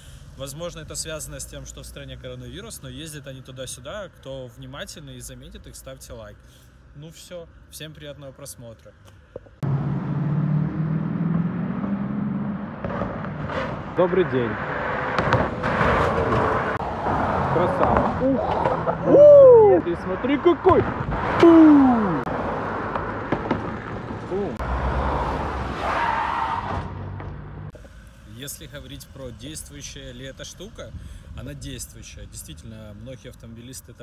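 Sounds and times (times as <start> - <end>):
road noise: 0.0 - 34.0
car engine driving by: 9.6 - 28.0.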